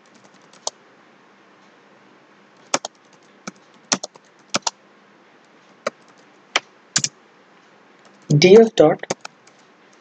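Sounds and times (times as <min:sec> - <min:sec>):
slow keyboard typing: 0:00.0 - 0:00.8, 0:02.6 - 0:04.8, 0:05.8 - 0:06.3, 0:09.0 - 0:10.0.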